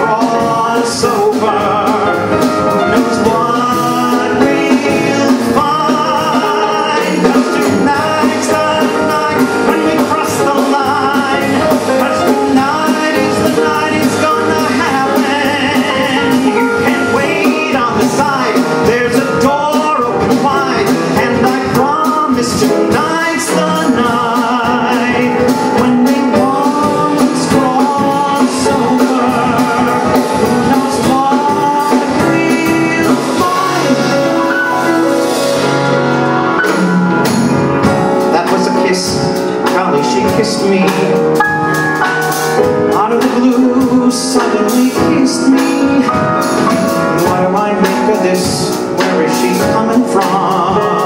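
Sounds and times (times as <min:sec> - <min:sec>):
drums keeping the beat: 0:00.0 - 0:51.0
live band playing: 0:00.0 - 0:51.0
man singing: 0:00.0 - 0:51.0.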